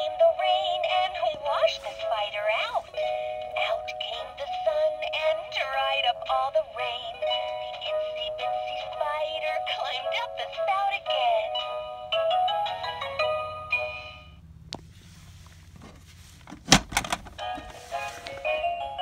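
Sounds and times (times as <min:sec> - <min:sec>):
tinny toy children's song: 0:00.0 - 0:14.2, 0:17.4 - 0:19.0.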